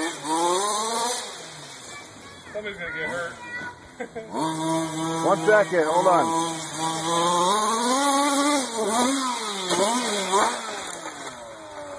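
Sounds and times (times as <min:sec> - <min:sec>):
small two-stroke engine revving: 0:00.0 - 0:11.9.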